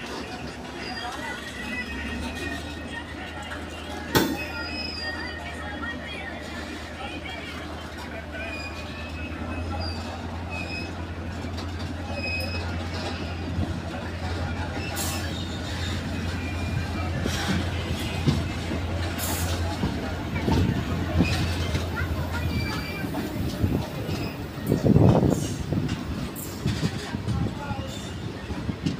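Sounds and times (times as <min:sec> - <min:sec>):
train running drone: 0:00.0 - 0:28.9.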